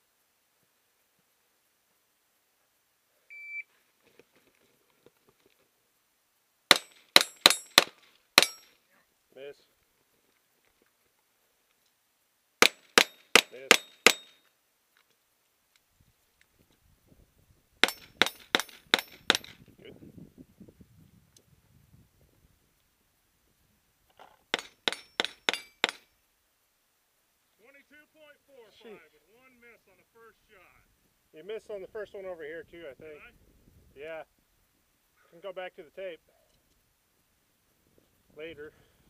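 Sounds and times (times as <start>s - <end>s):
handgun shots: 6.7s - 8.7s, 12.6s - 14.4s.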